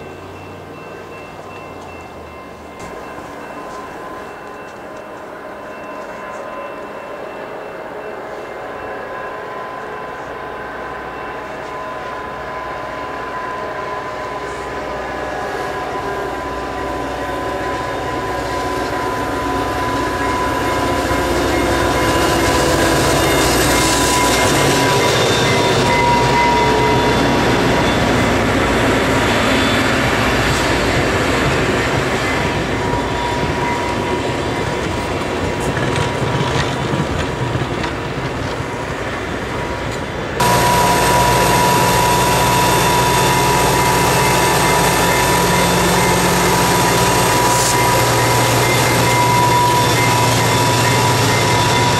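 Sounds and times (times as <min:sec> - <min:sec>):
train wheels clattering on rails: 0:00.0 - 0:06.6, 0:16.0 - 0:51.9
diesel locomotive engine: 0:00.0 - 0:51.9
steady high tone: 0:40.4 - 0:51.9.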